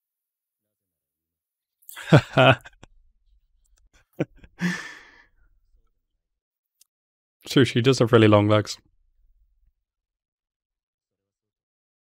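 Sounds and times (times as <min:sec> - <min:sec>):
man laughing briefly: 0:01.9 - 0:02.9, 0:04.2 - 0:05.2.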